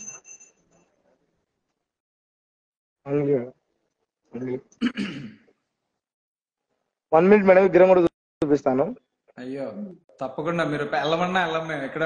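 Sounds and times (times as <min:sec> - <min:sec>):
person clearing throat: 0:04.8 - 0:05.5.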